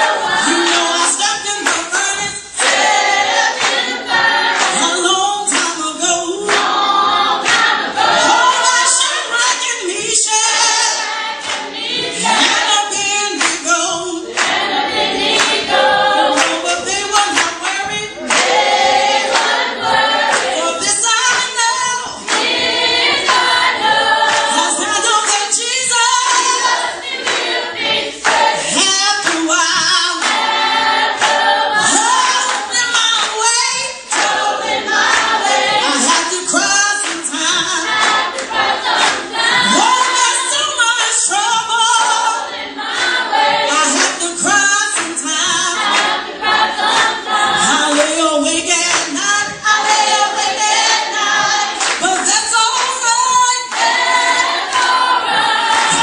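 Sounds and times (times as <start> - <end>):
group singing gospel song: 0.0 - 56.0
hand-clapping to the beat: 0.0 - 56.0.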